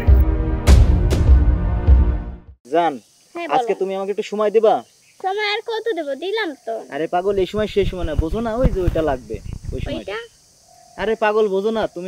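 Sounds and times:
two people talking: 0:02.7 - 0:12.0.

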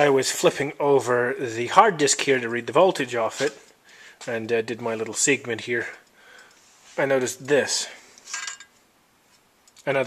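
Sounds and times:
faint clicks: 0:05.9 - 0:06.6.

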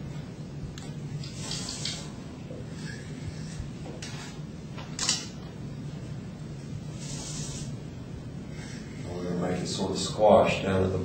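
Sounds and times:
low room hum: 0:00.0 - 0:11.0
scratchy rubbing on whiteboard: 0:07.0 - 0:07.7.

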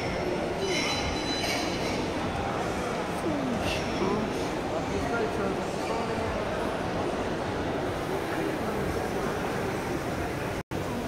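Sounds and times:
shopping mall hubbub: 0:00.0 - 0:11.0.

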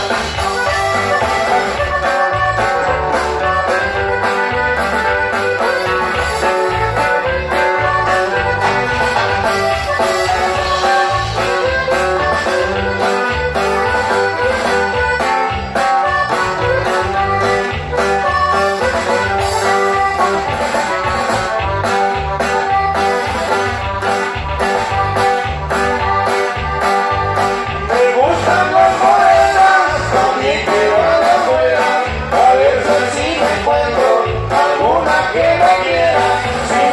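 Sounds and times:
accordion melody: 0:00.0 - 0:36.9
bass: 0:00.0 - 0:36.9
guitar: 0:00.0 - 0:36.9
person singing: 0:27.6 - 0:36.9.

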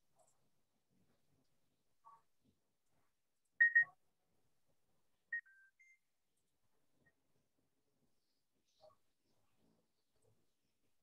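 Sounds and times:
short electronic beeps: 0:03.6 - 0:04.0.

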